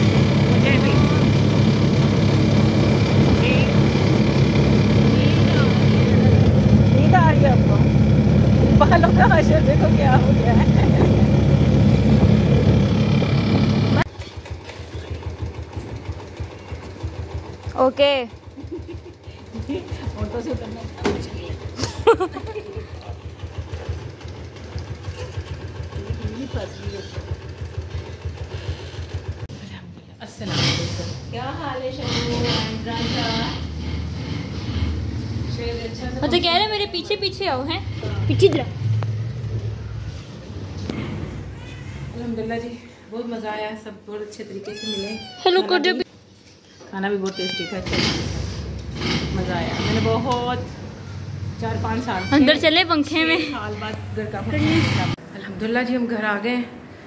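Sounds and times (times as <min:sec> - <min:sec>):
road noise: 0:00.0 - 0:14.1, 0:30.3 - 0:42.7, 0:47.4 - 0:57.0
motorcycle rickshaw engine running: 0:00.0 - 0:29.6, 0:31.3 - 0:42.5, 0:47.4 - 0:55.2.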